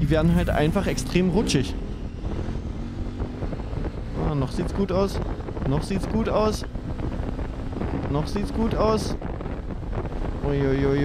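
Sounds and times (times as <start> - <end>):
motorcycle engine running: 0.0 - 11.0
wind noise on microphone: 0.0 - 11.0.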